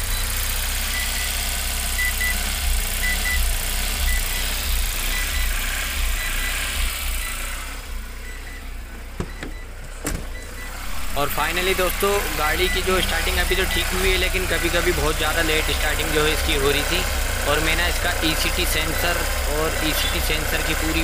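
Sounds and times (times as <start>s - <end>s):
car engine idling: 0.0s - 21.0s
short high warning beeps: 10.3s - 16.9s.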